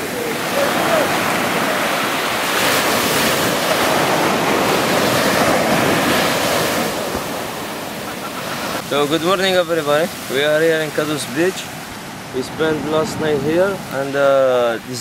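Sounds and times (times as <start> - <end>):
surf breaking on a sandy shore: 0.0 - 15.0.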